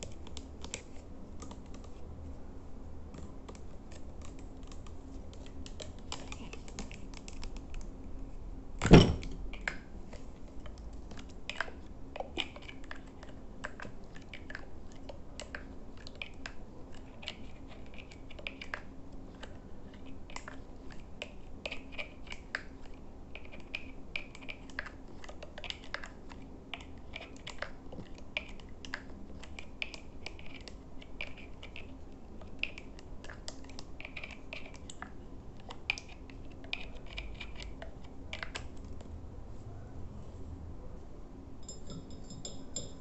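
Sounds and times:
fingertips tapping and clicking: 3.1 - 7.9.

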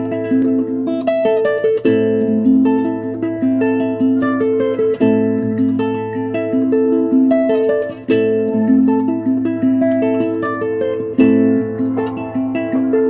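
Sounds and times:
plucked guitar picking notes: 0.0 - 13.0.

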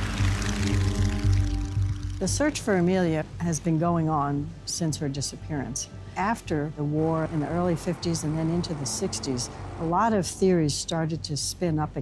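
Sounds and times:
sustained chord music: 0.0 - 10.9.

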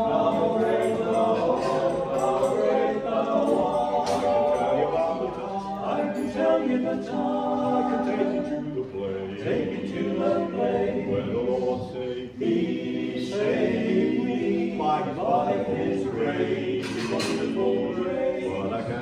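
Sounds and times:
male voices singing in harmony: 0.0 - 19.0.

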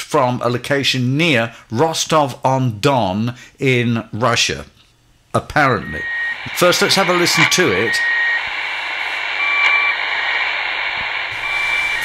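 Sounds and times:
radio static hiss: 5.4 - 12.0
short squeaky radio tones: 5.6 - 12.0.

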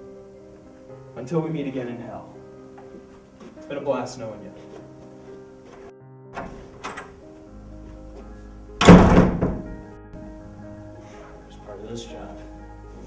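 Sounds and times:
background music score: 0.0 - 13.0
loud bang: 8.8 - 9.8.

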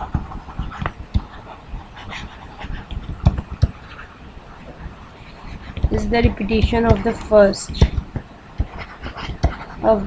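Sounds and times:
stylus tapping on tablet screen: 5.7 - 9.6.

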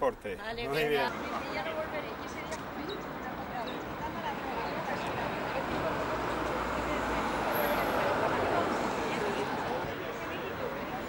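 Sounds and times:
low traffic rumble: 0.6 - 11.0
people chattering while walking: 0.6 - 11.0.

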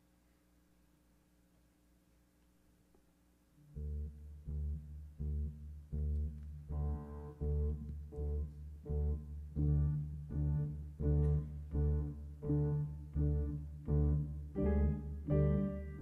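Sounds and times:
bass line: 3.6 - 16.0.

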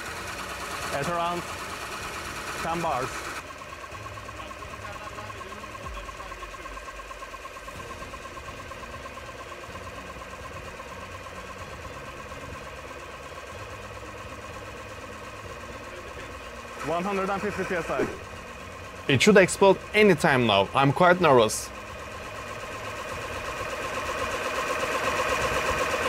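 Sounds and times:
air compressor pulsing hum: 0.0 - 26.0.

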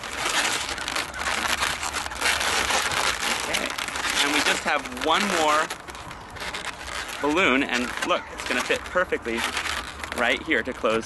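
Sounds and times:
balloons rubbing and crinkling: 0.0 - 11.0.

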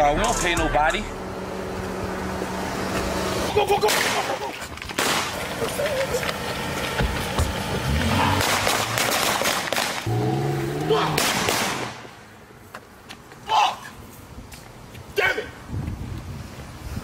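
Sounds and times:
raised voices: 3.4 - 4.8, 10.1 - 11.5
car pulling away: 5.0 - 11.0
pistol shots: 11.1 - 12.0.

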